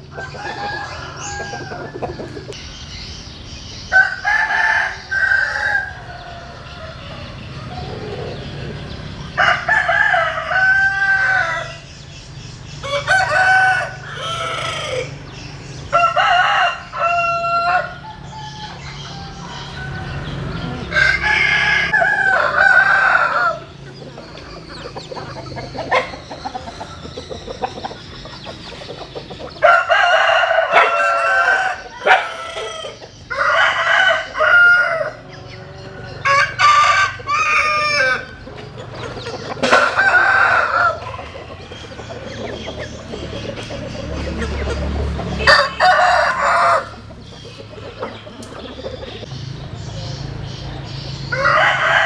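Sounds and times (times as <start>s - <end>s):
roosters crowing: 0.0s - 52.0s.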